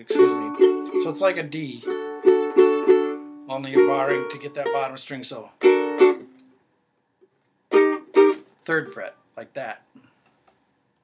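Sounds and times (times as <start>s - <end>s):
ukulele chord strum: 0.0s - 5.0s, 5.6s - 6.5s, 7.7s - 8.5s.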